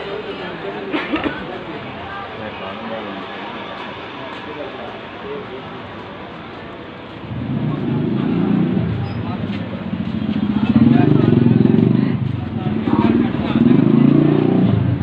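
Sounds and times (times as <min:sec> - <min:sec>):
faint voices: 0:00.0 - 0:15.0
motorcycle engine running: 0:07.3 - 0:15.0.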